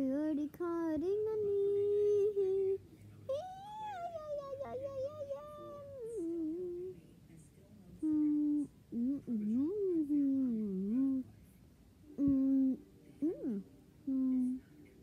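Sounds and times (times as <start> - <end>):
child humming: 1.6 - 6.9, 8.0 - 9.3, 12.2 - 14.6.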